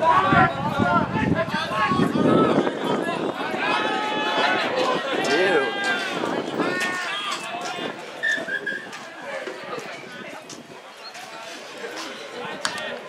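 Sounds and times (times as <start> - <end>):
people shouting and calling: 0.0 - 13.0.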